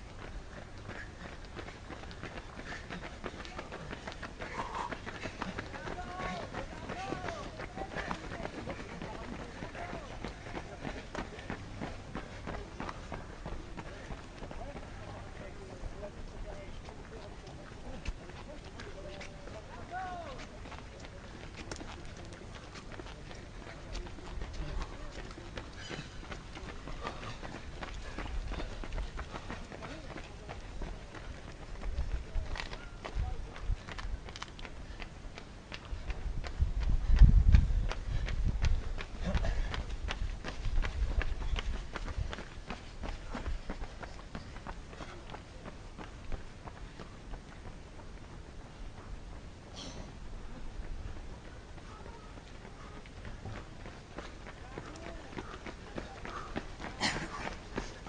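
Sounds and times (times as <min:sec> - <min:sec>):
runners' footsteps on asphalt: 0:00.0 - 0:58.0
low rumble on microphone: 0:36.2 - 0:42.3.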